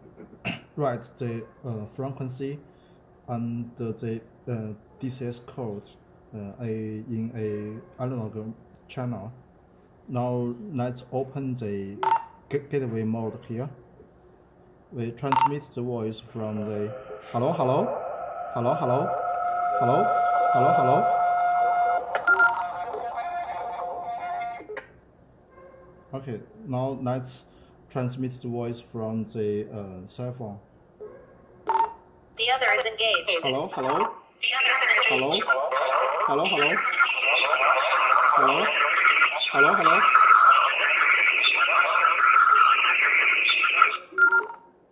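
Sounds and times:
faint radio audio: 14.9s - 25.0s, 32.4s - 44.6s
steady radio tone: 16.2s - 24.8s, 32.4s - 44.5s
short electronic beeps: 22.3s - 22.6s, 42.6s - 44.6s.

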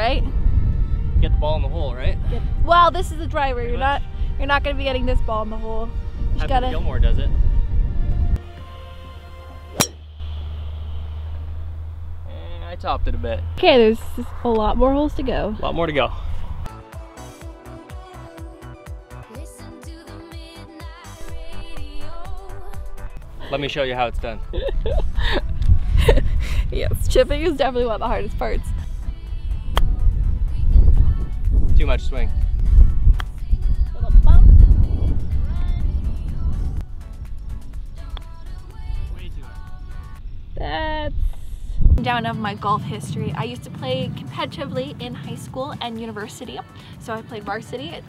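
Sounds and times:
golf club striking ball: 9.7s - 11.8s
background music with deep bass: 15.2s - 26.2s, 27.0s - 40.2s.

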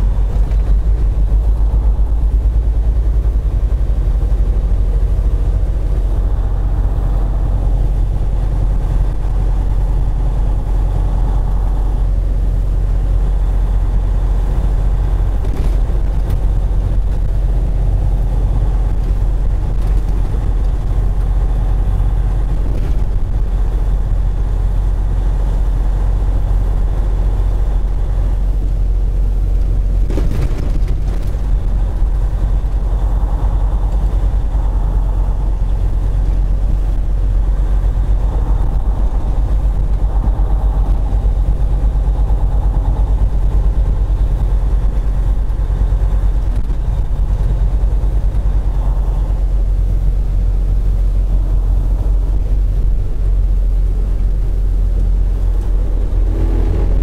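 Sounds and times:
diesel truck engine droning: 0.0s - 57.0s
road noise: 0.0s - 57.0s.

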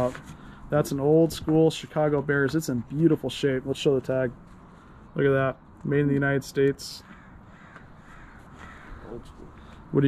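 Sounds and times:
bird cawing faintly: 6.7s - 10.0s.

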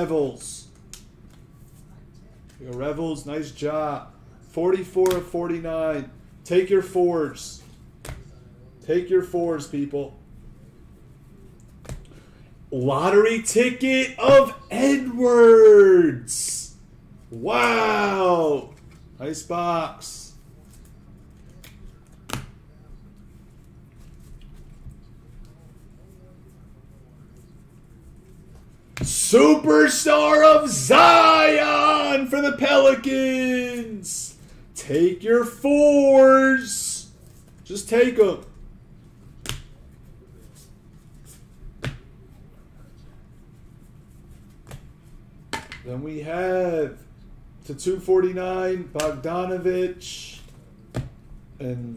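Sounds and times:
low steady hum: 0.0s - 51.9s.

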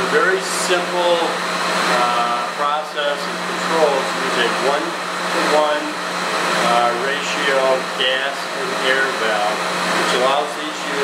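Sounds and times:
air handler rushing hum: 0.0s - 11.0s
man speaking: 2.0s - 6.0s, 6.6s - 11.0s.

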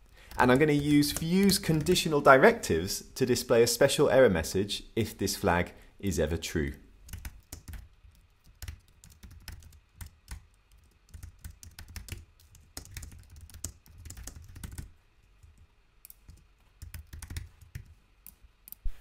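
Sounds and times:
faint keyboard typing: 0.0s - 2.3s, 6.6s - 18.9s.

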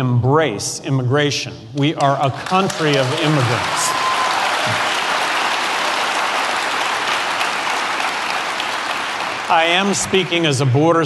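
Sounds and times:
large audience clapping: 2.0s - 10.8s.

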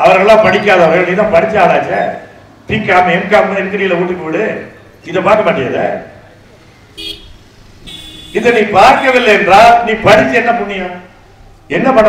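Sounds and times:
distant vehicle horn toot: 7.0s - 9.4s.

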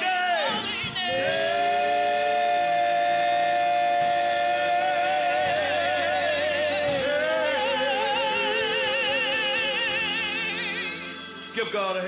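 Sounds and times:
gospel singers holding a chord: 0.0s - 11.6s.

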